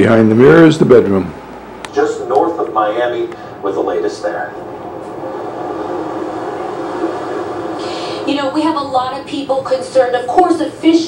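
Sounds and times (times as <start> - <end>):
steady drone with held tones: 3.0 - 10.4.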